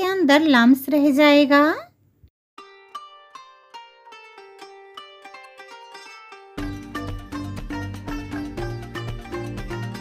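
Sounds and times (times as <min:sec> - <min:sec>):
plucked string melody: 0:02.6 - 0:10.0.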